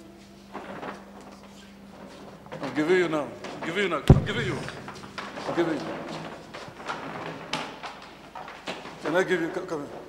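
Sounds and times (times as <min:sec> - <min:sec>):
sharp knocks: 0:04.1 - 0:05.8
plastic chairs clattering: 0:04.9 - 0:10.0.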